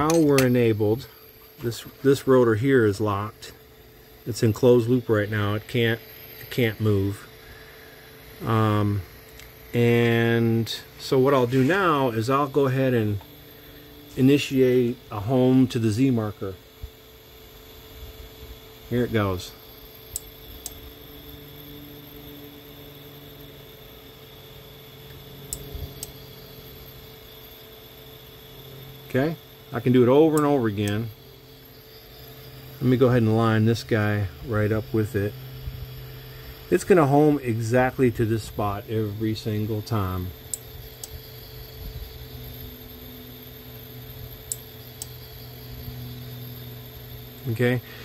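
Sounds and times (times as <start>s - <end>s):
servo motor humming: 0.0s - 16.3s, 28.6s - 48.0s
motor turning tone: 0.0s - 48.0s.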